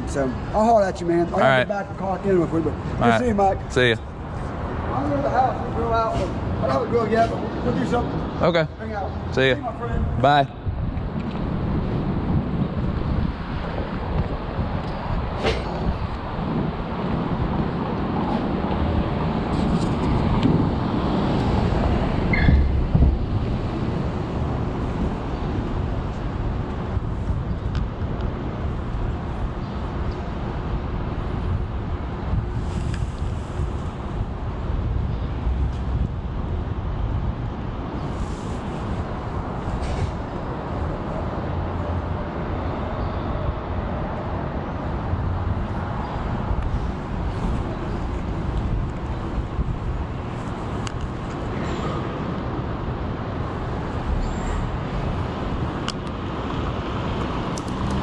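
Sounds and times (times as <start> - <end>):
rumble of street traffic: 0.0 - 58.0.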